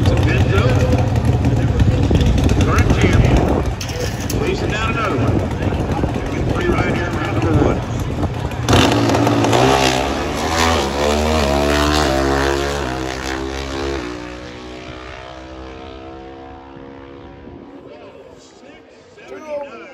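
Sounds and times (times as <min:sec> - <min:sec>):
drag racing motorcycle accelerating: 0:00.0 - 0:18.8.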